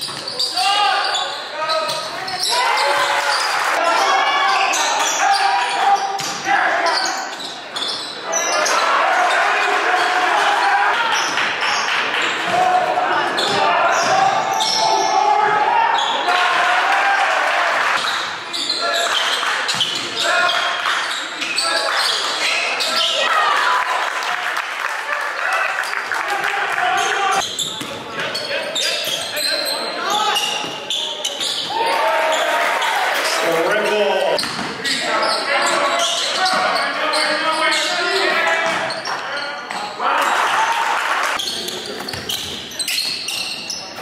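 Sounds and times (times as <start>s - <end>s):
indistinct shouts: 8.3s - 11.3s, 12.4s - 18.0s.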